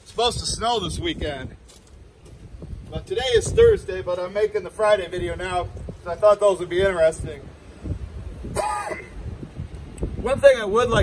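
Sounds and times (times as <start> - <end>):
wind rumbling on microphone: 0.0 - 11.0
man clearing his throat: 8.5 - 9.2.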